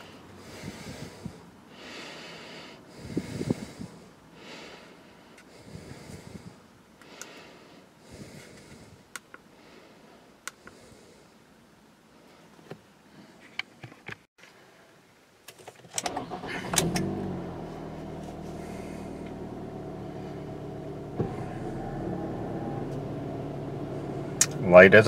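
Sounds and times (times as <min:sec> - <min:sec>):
car engine starting and idling: 0:15.9 - 0:25.0.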